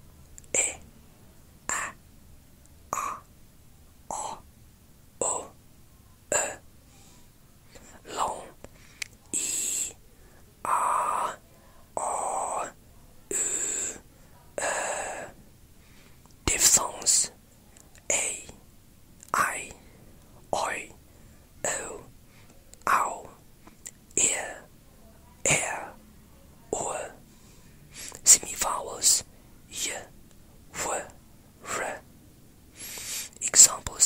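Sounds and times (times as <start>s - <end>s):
person whispering words: 0.4s - 0.9s, 1.6s - 2.0s, 2.9s - 3.3s, 4.1s - 4.5s, 5.2s - 5.6s, 6.3s - 6.7s, 7.7s - 15.4s, 16.4s - 18.6s, 19.2s - 19.8s, 20.4s - 21.0s, 21.6s - 26.0s, 26.6s - 27.2s, 27.9s - 32.1s, 32.8s - 34.0s.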